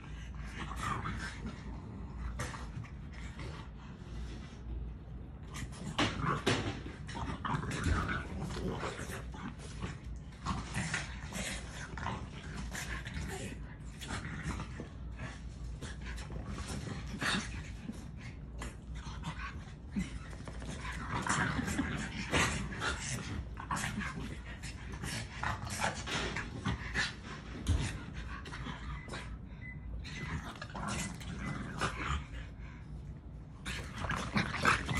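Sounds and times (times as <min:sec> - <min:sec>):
dogs play-fighting noises: 0:00.0 - 0:34.9.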